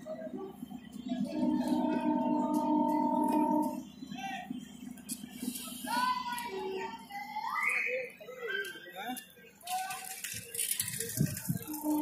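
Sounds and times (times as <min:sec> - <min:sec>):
train rumble: 0:00.0 - 0:07.5, 0:09.6 - 0:12.0.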